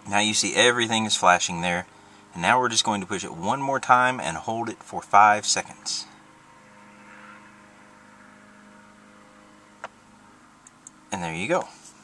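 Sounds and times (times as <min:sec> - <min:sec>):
faint car cabin hum: 0:00.0 - 0:06.3, 0:09.3 - 0:12.0.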